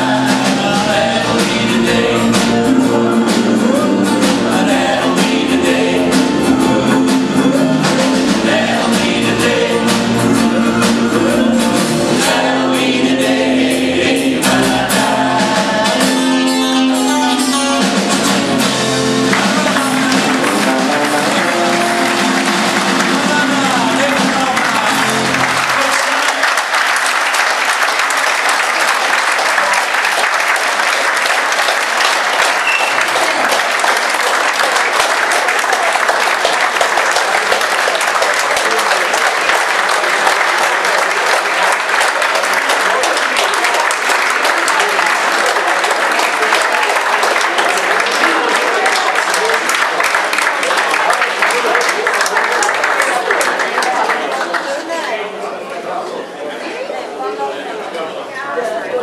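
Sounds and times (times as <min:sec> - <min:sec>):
country band with acoustic guitars: 0:00.0 - 0:25.7
audience applause: 0:18.0 - 0:55.9.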